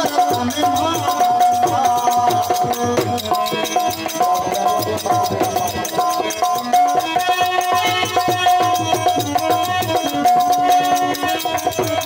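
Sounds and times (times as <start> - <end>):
dholak drumming: 0.0 - 12.0
harmonium sustained reedy notes: 0.0 - 12.0
jingling hand percussion: 0.0 - 12.0.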